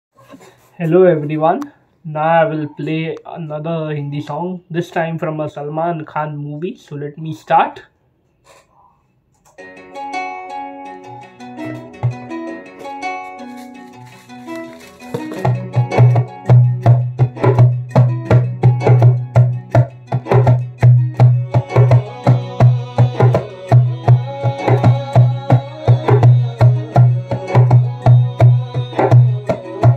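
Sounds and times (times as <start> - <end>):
djembe hand strokes: 13.4 - 16.2.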